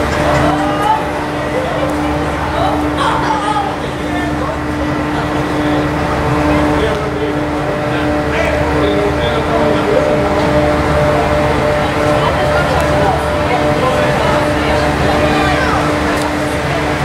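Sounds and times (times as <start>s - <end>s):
faint voices: 0.0s - 17.0s
loud droning hum: 0.0s - 17.0s.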